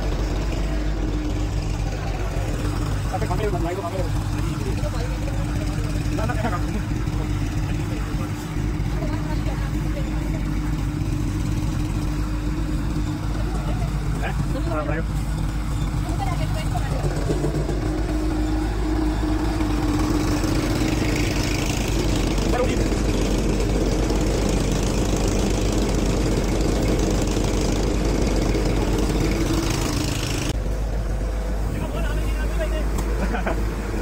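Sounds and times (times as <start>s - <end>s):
tractor engine drone: 0.0s - 34.0s.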